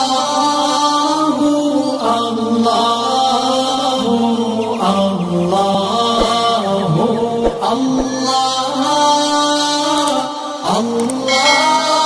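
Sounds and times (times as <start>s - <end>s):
man singing wordless held notes: 0.0s - 12.0s
soft low thumps: 5.7s - 8.2s.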